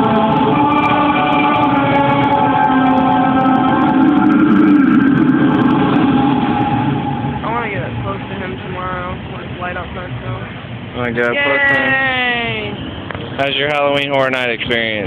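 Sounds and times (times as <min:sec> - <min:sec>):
choir-like held chords: 0:00.0 - 0:08.1.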